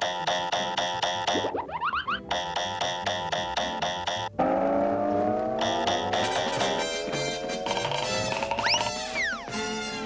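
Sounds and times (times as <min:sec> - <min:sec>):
rising boing sound effects: 0:01.3 - 0:02.3, 0:04.4 - 0:06.8
fast repeated chase chords: 0:05.6 - 0:10.0.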